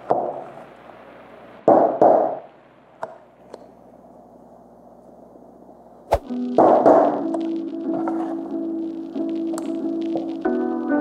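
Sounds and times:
short swish: 6.1 - 6.3.

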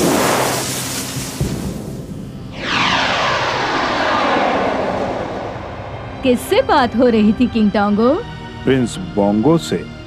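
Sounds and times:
jet-like whoosh: 2.4 - 7.4.

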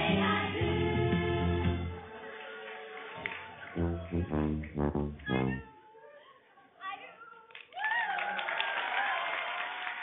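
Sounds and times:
deep low backing: 3.7 - 5.7
voice holding pitched notes: 3.8 - 5.7.

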